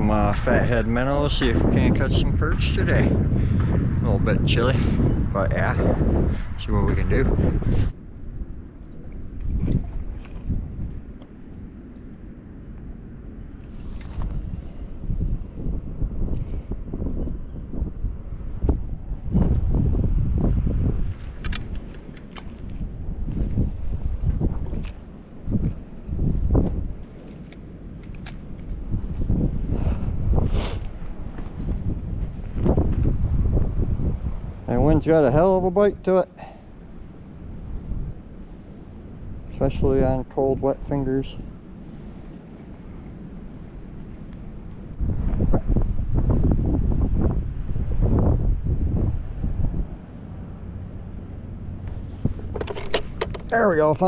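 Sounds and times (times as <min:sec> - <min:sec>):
wind buffeting microphone: 0:00.0 - 0:54.0
sharp handling clicks: 0:21.1 - 0:22.8, 0:27.0 - 0:28.8, 0:52.4 - 0:53.6.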